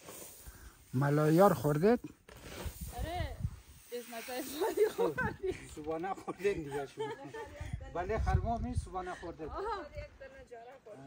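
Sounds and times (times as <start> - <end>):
grain pouring off a shovel: 0.0 - 5.2
people talking: 2.9 - 7.6.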